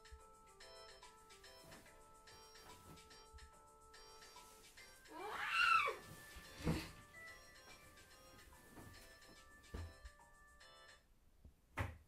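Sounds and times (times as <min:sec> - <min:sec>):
soft background music: 0:00.0 - 0:11.1
girl whining: 0:05.1 - 0:06.1.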